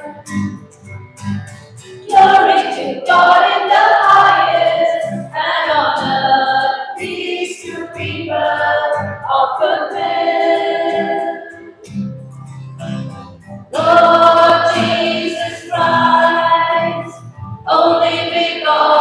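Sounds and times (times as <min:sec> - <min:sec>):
women's choir singing a hymn: 0:02.0 - 0:11.8, 0:13.7 - 0:19.0.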